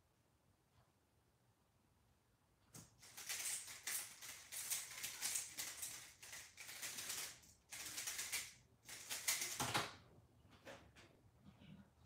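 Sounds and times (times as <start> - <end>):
puzzle cube clattering turns: 3.0 - 9.8.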